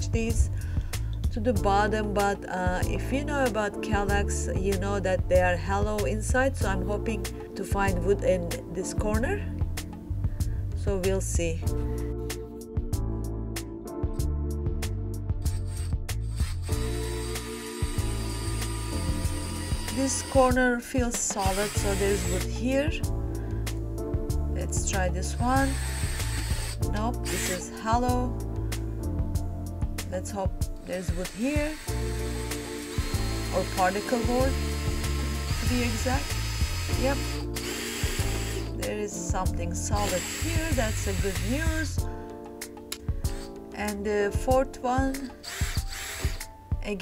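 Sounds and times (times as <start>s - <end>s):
cordless drill boring into wood: 15.5s - 20.6s, 21.2s - 22.5s, 25.3s - 27.8s, 31.0s - 38.8s, 39.8s - 41.9s, 43.3s - 43.5s, 45.2s - 46.5s.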